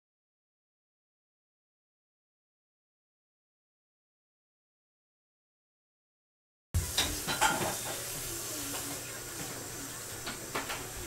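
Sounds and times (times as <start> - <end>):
faint steady hiss: 6.8 - 11.0.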